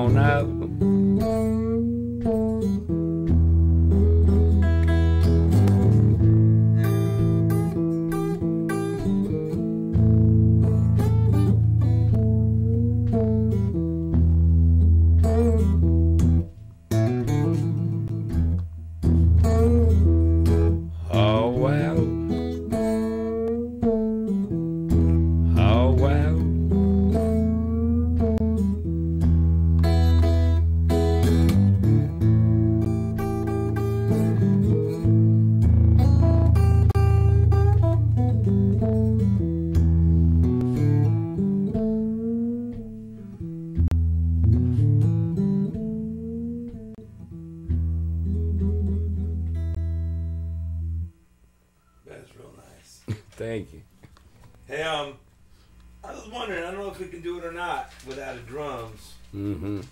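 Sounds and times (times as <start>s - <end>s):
blues guitar: 0.0s - 51.2s
deep sustained bass notes: 0.0s - 51.2s.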